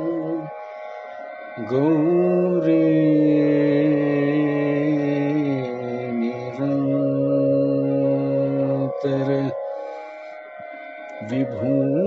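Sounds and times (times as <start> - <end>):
man singing long held note: 0.0 - 0.6, 1.6 - 10.2, 11.1 - 12.0
steady drone: 0.0 - 12.0.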